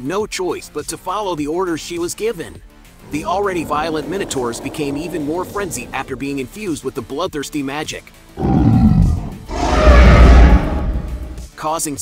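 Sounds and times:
heavy low rumble: 3.0 - 6.4, 8.4 - 11.4
deep monster roar: 3.0 - 6.6, 8.4 - 11.4.

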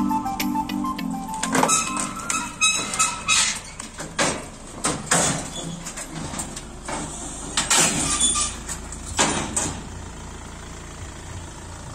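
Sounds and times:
vehicle engine idling: 0.0 - 11.9
clanks on steel ramps: 1.4 - 9.9.

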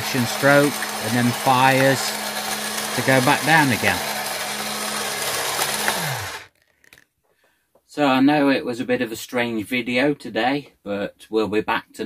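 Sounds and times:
mechanical whir of motor: 0.3 - 6.5.

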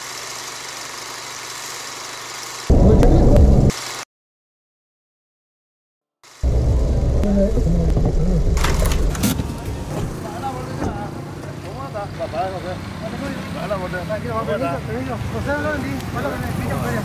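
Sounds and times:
car engine rumbling: 2.7 - 3.7, 6.4 - 11.7.

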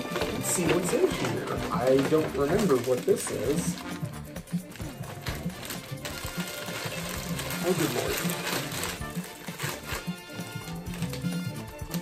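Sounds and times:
background music: 0.0 - 12.0
plastic packaging rustling: 0.0 - 12.0.

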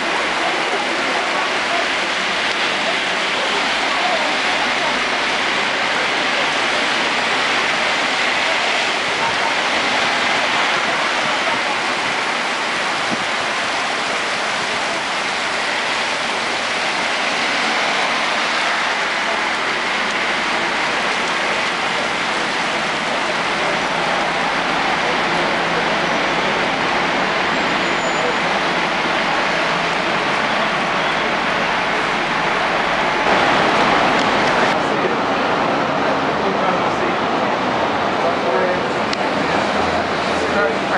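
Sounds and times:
heavy rain on pavement: 0.0 - 40.9.

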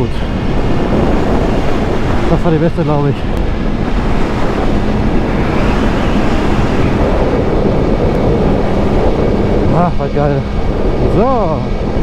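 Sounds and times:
wind roaring over microphone: 0.0 - 12.0.

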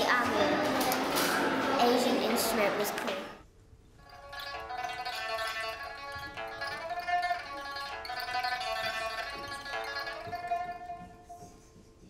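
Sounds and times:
pipa melody: 4.0 - 12.0.

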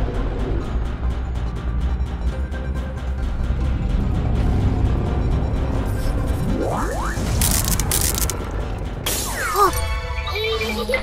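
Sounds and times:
background music: 0.0 - 11.0
cartoon glass cracking: 7.4 - 8.5.

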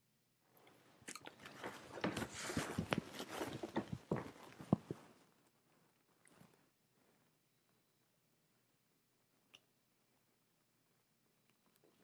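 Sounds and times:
rustling and crackling handling noise: 0.6 - 7.4.

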